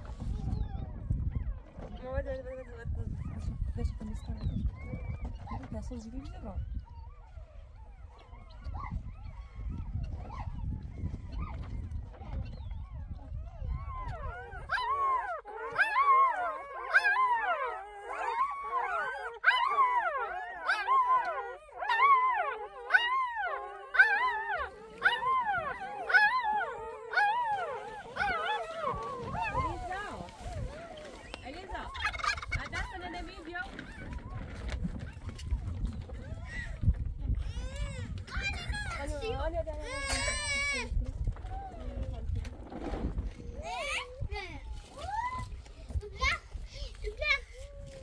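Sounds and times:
puppies whining and whimpering: 0.0 - 48.0.

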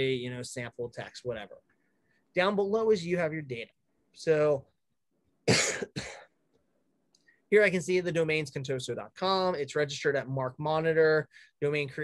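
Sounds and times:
man coughing: 5.4 - 6.4.

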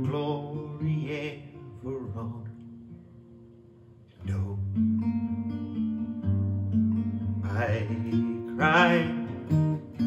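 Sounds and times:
man singing: 0.0 - 2.8, 4.2 - 4.9, 7.4 - 10.0
acoustic guitar chords: 0.0 - 10.0.

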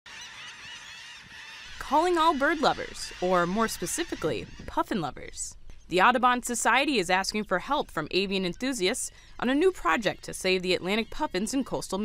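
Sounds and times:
seabirds calling: 0.1 - 12.0.

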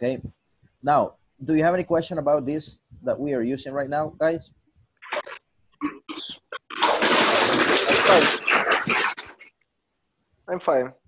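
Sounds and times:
person speaking: 0.0 - 9.0
microphone hiss: 0.0 - 11.0.

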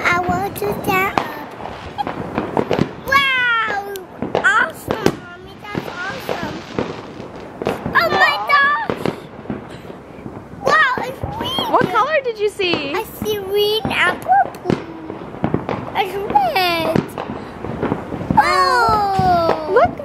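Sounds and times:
toddler's voice: 0.0 - 1.6, 3.0 - 6.6, 7.9 - 9.1, 10.6 - 12.0, 12.9 - 15.2, 18.3 - 20.0
firework hiss: 0.0 - 20.0
fireworks popping and cracking: 0.0 - 20.0.

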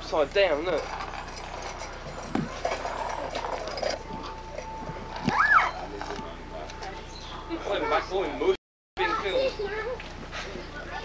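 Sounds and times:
short high animal call: 5.3 - 5.8.

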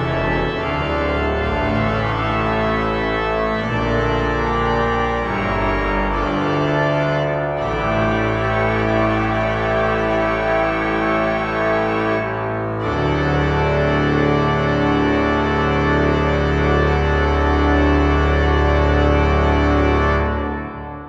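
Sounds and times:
pipe organ chords: 0.0 - 21.0.

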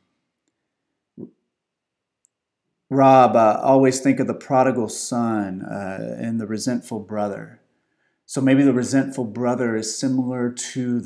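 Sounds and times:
man speaking: 2.9 - 7.6, 8.3 - 11.0.

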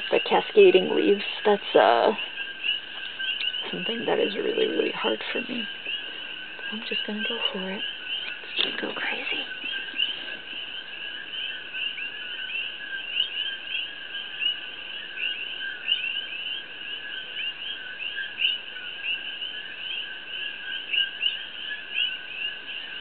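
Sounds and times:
high chirps of small animals: 0.0 - 23.0.

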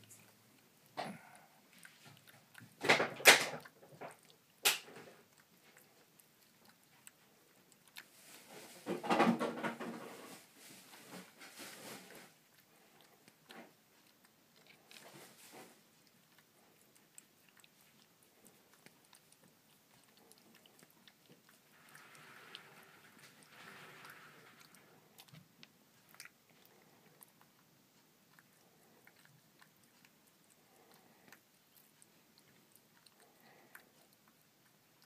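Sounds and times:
cat crunching dry kibble: 0.0 - 35.0.

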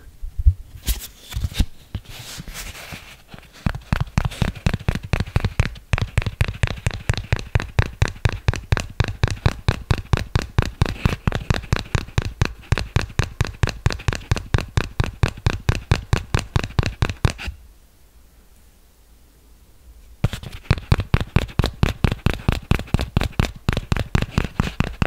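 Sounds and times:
fingertips tapping close to microphone: 3.3 - 17.6, 20.2 - 25.0.

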